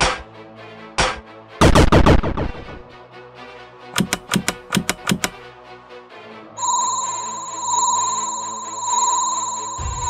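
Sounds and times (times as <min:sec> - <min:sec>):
background music: 0:00.0 - 0:10.0
sharp clicks: 0:04.0 - 0:05.4
electronic ringing tone: 0:06.6 - 0:10.0.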